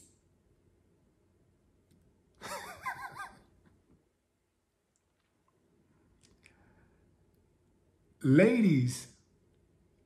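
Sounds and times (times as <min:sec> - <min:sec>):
man's stifled laugh: 0:02.4 - 0:03.6.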